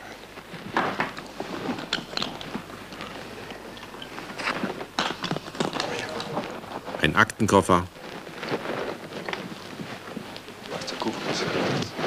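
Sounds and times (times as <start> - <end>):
muffled rustling and handling: 0.0 - 12.0
faint indistinct voices: 2.4 - 12.0.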